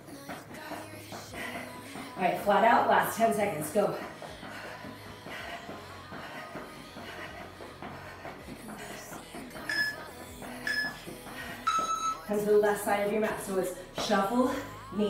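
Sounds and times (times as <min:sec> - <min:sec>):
background workout music: 0:00.0 - 0:15.0
timer countdown beeps: 0:09.6 - 0:12.6.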